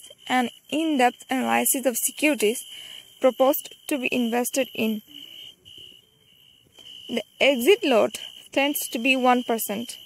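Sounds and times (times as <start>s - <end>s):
faint high-pitched tone: 0.0s - 10.0s.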